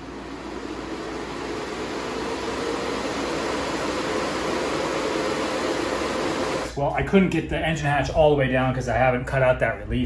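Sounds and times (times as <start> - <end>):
computer fans whooshing hum: 0.0 - 10.0.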